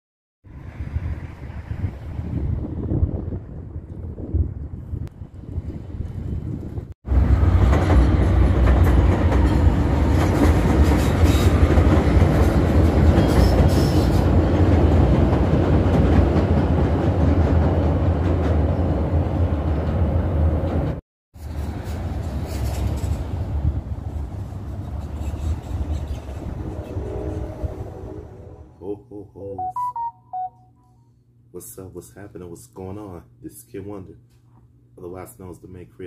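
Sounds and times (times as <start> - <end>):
elevated train rumbling overhead: 0.5 - 28.9.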